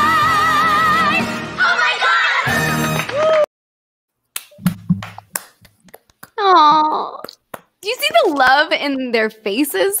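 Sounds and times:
hand claps: 0:04.4 - 0:07.8.

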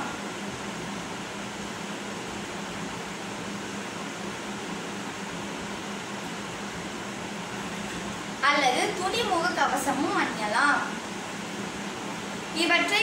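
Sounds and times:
fan hum and hiss: 0:00.0 - 0:13.0.

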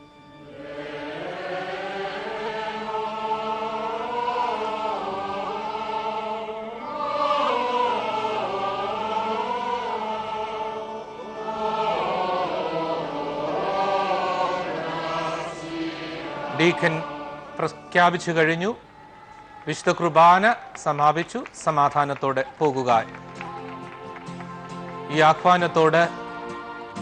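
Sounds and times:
choir singing chant: 0:00.3 - 0:20.3, 0:23.4 - 0:27.0.

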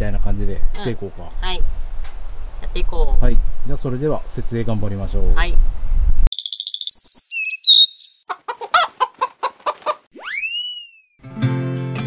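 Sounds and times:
high whistled chirps: 0:06.3 - 0:08.2, 0:10.2 - 0:11.2
rising whistle glide: 0:06.3 - 0:08.2, 0:10.2 - 0:11.1
cartoon hen clucks: 0:06.8 - 0:10.1.

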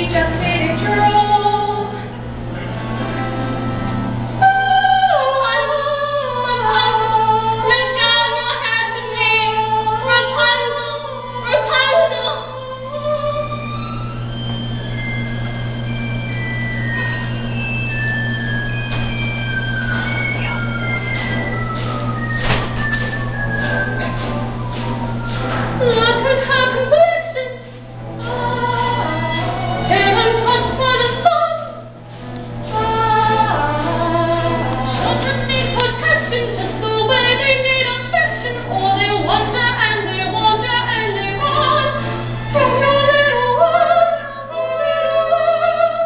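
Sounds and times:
woman singing: 0:00.0 - 0:02.1, 0:04.4 - 0:14.0, 0:25.8 - 0:32.0, 0:32.7 - 0:46.0.

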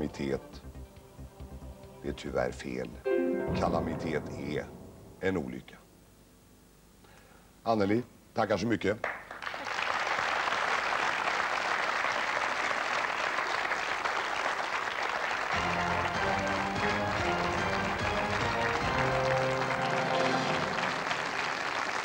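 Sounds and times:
game show music: 0:00.0 - 0:05.7, 0:15.5 - 0:21.6
studio audience applauding: 0:09.0 - 0:22.0.

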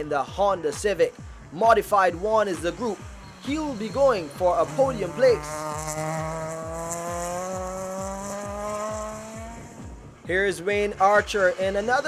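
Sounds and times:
background music with steady beat: 0:00.0 - 0:12.0
car engine accelerating: 0:01.6 - 0:12.0.

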